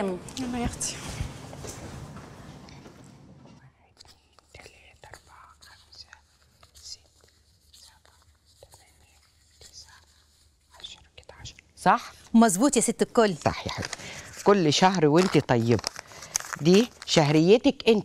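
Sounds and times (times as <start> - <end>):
quiet whispering: 3.5 - 12.1
banknotes rustling and clicking: 13.2 - 17.7.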